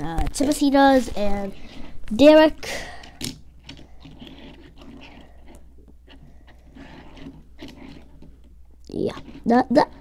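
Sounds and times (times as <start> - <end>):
toy cars scraping on hard floor: 3.9 - 8.3.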